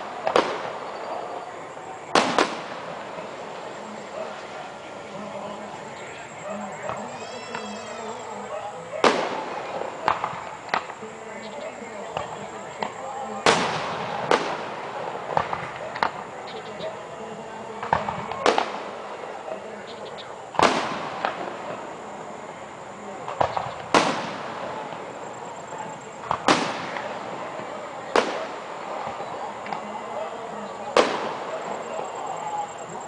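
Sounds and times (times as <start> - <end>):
fireworks booming: 0.0 - 19.8, 20.4 - 33.0
fireworks bangs and crackles: 0.0 - 33.0.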